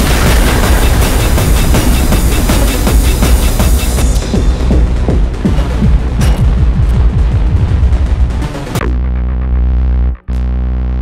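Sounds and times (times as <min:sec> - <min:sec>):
sustained electronic bass note: 0:08.6 - 0:11.0.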